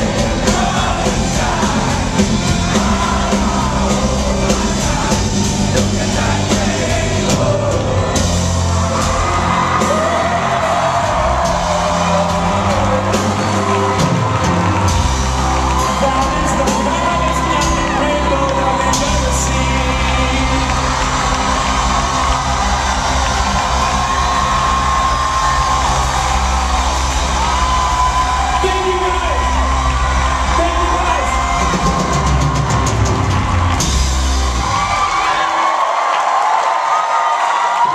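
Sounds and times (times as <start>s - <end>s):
crowd whooping and cheering: 0.0s - 37.9s
loud music with singing: 0.0s - 37.9s.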